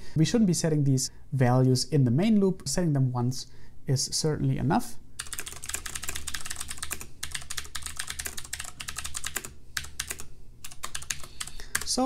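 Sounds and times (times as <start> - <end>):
computer keyboard typing: 5.2 - 12.0.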